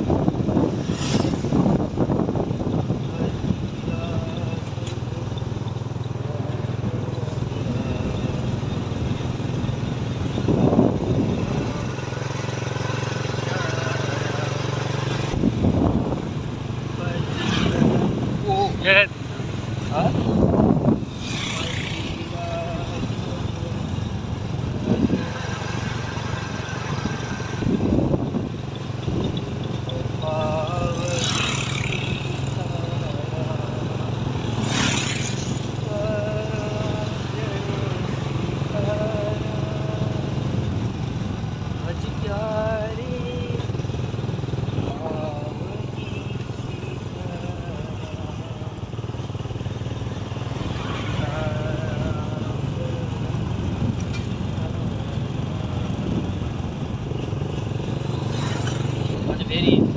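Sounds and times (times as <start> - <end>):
road and wind noise: 0.0 - 59.9
vehicle engine running: 0.0 - 59.9
voices: 2.7 - 43.8, 44.5 - 59.9.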